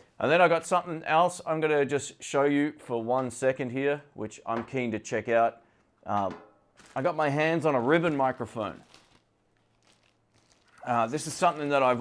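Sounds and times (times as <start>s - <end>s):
person speaking: 4.2s - 9.1s, 10.7s - 12.0s.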